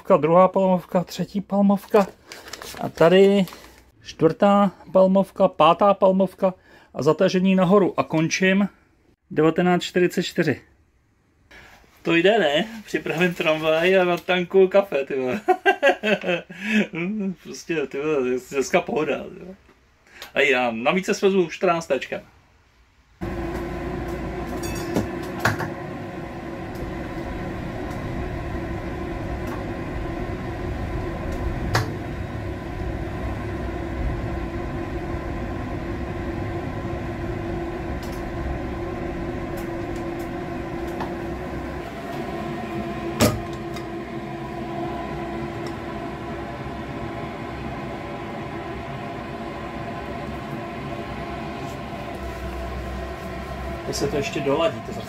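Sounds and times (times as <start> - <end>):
electric tram hum: 23.2 - 55.0.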